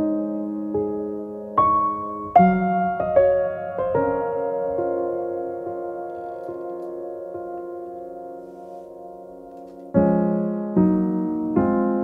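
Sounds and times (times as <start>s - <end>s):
soft slow piano music: 0.0s - 12.0s.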